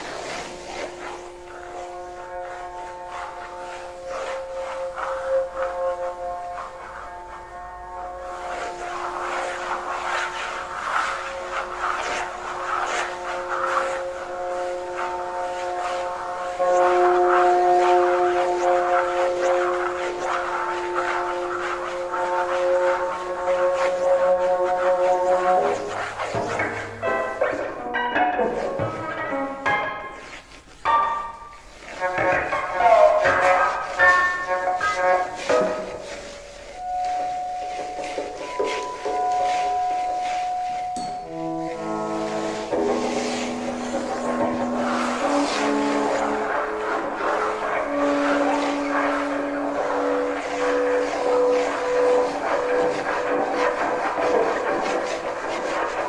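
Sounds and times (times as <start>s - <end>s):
scratchy rasping noise: 0.0s - 56.0s.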